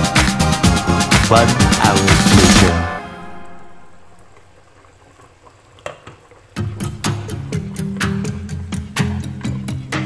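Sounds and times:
background music with steady beat: 0.0 - 4.4, 6.6 - 10.0
stew simmering with faint bubbling: 3.3 - 10.0.

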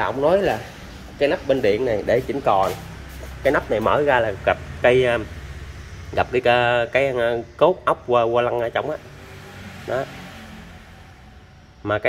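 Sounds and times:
man speaking: 0.0 - 5.3, 6.1 - 9.0.

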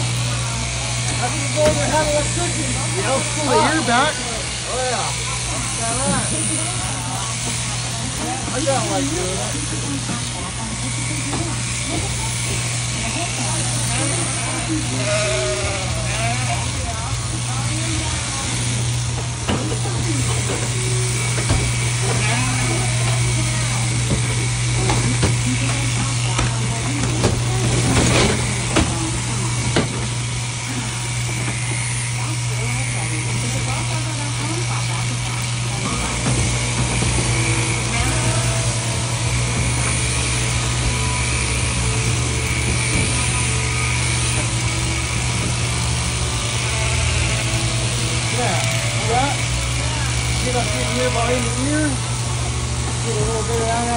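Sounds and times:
sheep-shearing handpiece motor hum: 0.0 - 53.9
clipping through wool: 5.6 - 52.0.

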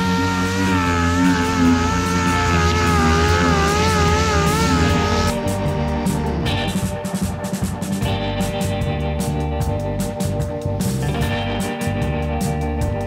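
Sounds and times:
orbital sander running: 0.0 - 6.9.

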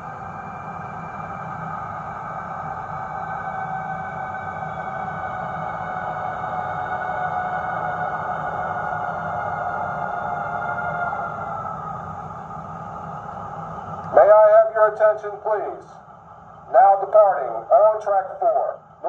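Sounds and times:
model locomotive whine: 0.0 - 19.0.

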